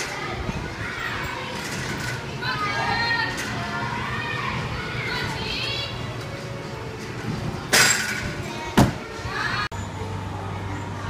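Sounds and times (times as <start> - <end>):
children chattering: 0.0 - 6.6.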